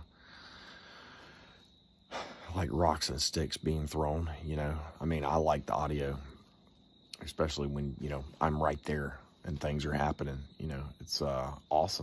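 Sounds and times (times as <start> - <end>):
man breathing: 0.0 - 2.6.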